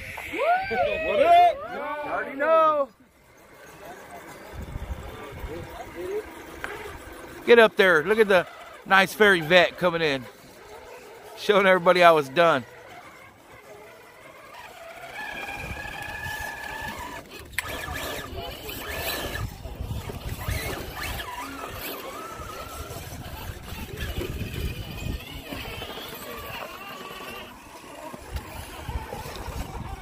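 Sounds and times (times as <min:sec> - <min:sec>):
toy car motor whining: 0:00.0 - 0:30.0.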